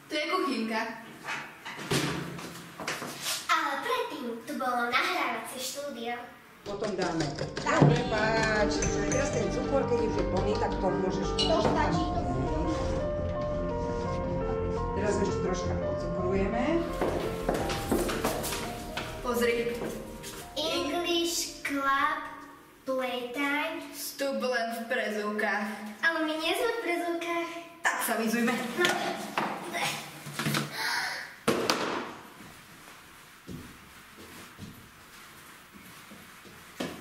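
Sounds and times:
footsteps on tiled floor: 0:01.0 - 0:03.5, 0:16.8 - 0:20.9, 0:32.2 - 0:37.0
background music: 0:06.7 - 0:21.9
shoes knocking and scuffing: 0:16.9 - 0:19.2, 0:36.1 - 0:37.0.

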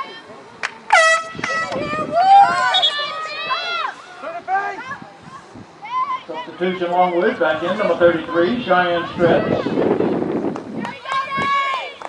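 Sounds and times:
air horn blasts: 0:00.9 - 0:01.8.

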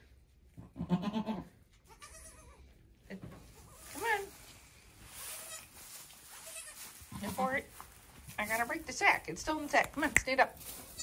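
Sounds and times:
goat bleating: 0:00.8 - 0:02.6, 0:05.3 - 0:05.7, 0:06.4 - 0:07.4.

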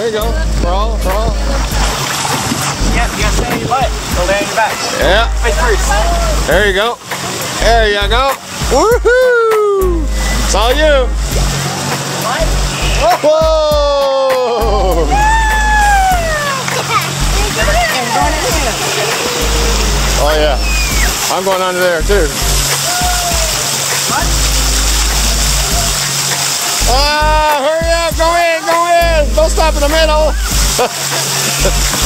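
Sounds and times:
water rushing down a slide: 0:00.0 - 0:32.0
faint children's voices: 0:16.0 - 0:19.5.

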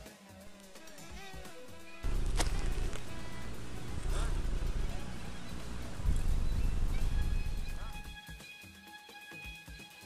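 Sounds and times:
wind buffeting microphone: 0:02.0 - 0:08.0.

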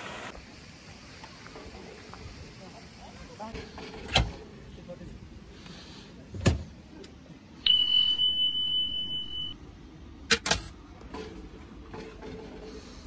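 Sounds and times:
loud steady high beep: 0:07.6 - 0:09.6.

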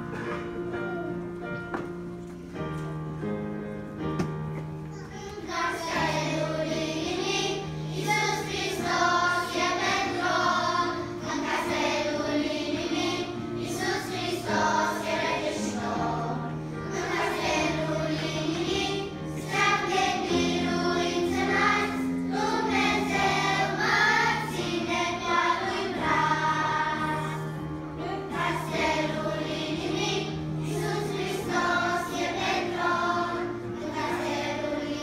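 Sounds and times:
low held accompaniment notes: 0:00.0 - 0:35.0
children's choir singing: 0:05.4 - 0:35.0.

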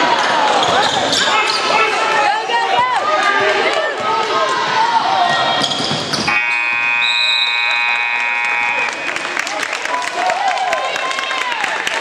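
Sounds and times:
sneakers squeaking on hardwood: 0:05.3 - 0:07.0
scoreboard buzzer blast: 0:06.3 - 0:09.2.

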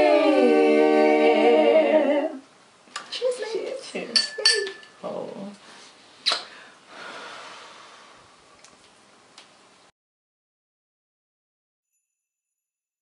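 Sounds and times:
women singing in harmony: 0:00.0 - 0:02.5
blown kiss smack: 0:06.2 - 0:06.5.

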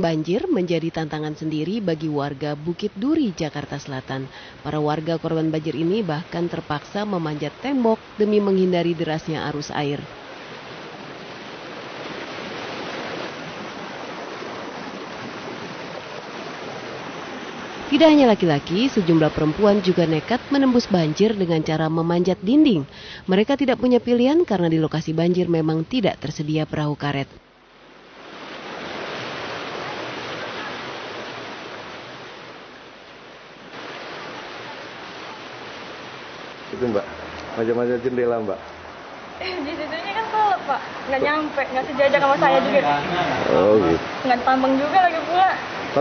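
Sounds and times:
floodwater rushing: 0:00.0 - 0:23.2, 0:27.8 - 0:46.0.

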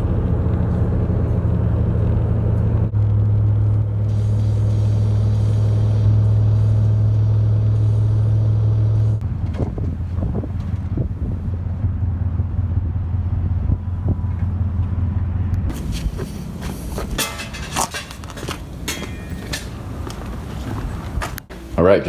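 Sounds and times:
car engine and road noise: 0:00.0 - 0:21.9.

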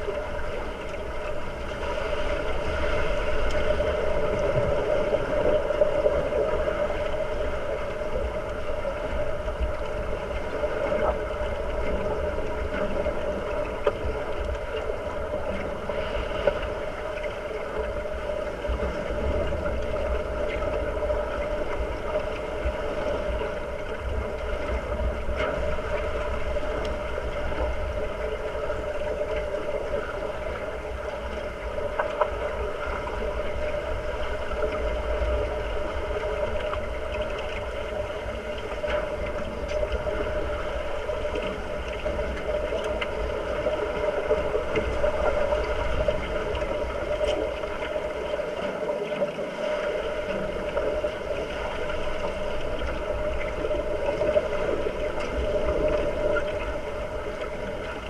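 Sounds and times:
muffled underwater rumble: 0:00.0 - 0:58.0.

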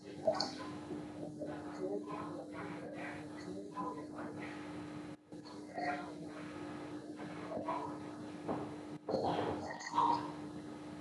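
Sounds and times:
steady electrical hum: 0:00.0 - 0:11.0.

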